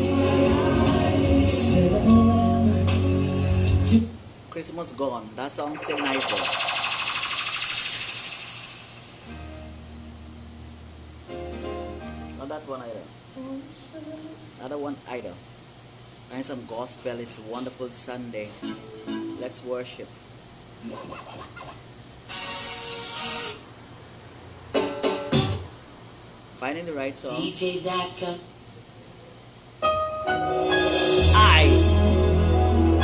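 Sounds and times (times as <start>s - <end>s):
recorded gospel music: 0.0s - 4.2s, 29.8s - 33.0s
rising electronic sweep with flutter: 5.6s - 9.4s.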